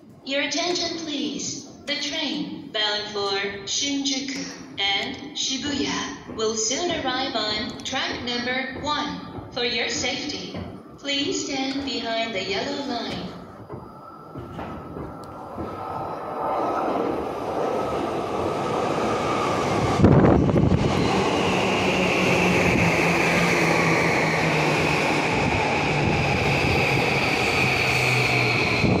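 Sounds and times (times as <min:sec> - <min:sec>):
electric train passing: 0:10.0 - 0:29.0
high train motor whine: 0:10.0 - 0:29.0.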